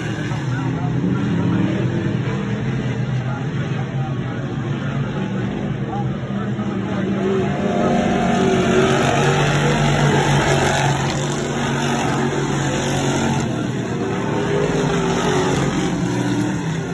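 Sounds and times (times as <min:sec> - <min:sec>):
race car engines droning: 0:00.0 - 0:16.9.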